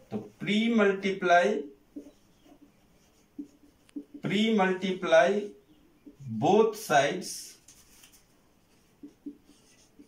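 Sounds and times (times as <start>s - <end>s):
marker pen scratching on whiteboard: 1.6s - 5.1s, 8.6s - 10.0s.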